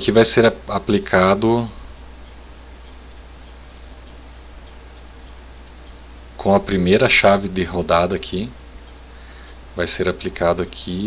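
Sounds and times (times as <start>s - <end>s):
electrical hum with hiss: 0.0s - 11.0s
faint ticks: 1.8s - 6.2s, 8.8s - 9.8s.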